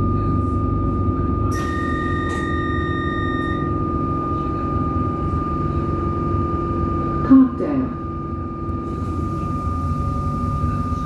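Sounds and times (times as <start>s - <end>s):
train interior low hum: 0.0s - 11.0s
constant high-pitched tone: 0.7s - 6.2s
higher tone: 0.9s - 6.2s.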